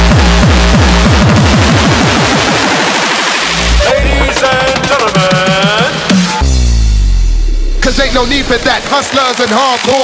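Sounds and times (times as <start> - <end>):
pounding kick drum roll: 0.0 - 2.8
dense noisy synth: 0.0 - 4.3, 6.3 - 9.2
hardcore electronic music: 0.0 - 10.0.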